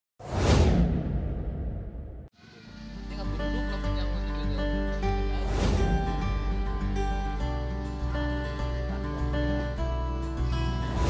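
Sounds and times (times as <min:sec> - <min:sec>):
whoosh sound effect: 0:00.2 - 0:02.2, 0:05.4 - 0:06.3.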